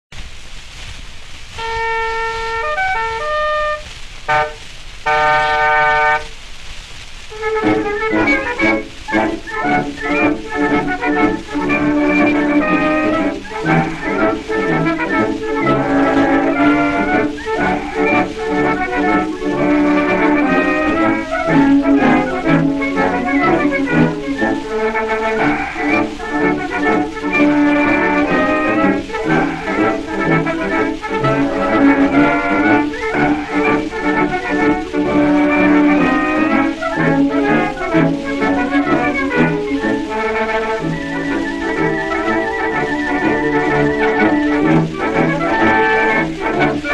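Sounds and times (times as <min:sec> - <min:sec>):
record surface hiss: 0:00.1 - 0:46.9
military band playing a march: 0:01.6 - 0:06.3, 0:07.3 - 0:46.9.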